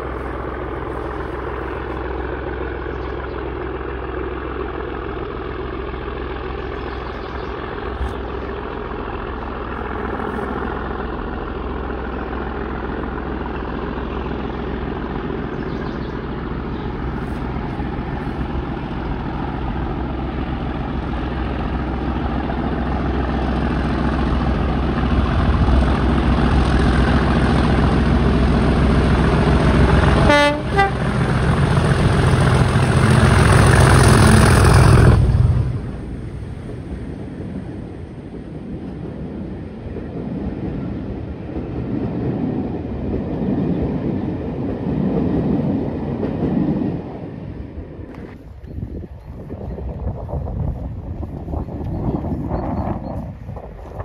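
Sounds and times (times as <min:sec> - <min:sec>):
diesel locomotive engine: 0:00.0 - 0:54.0.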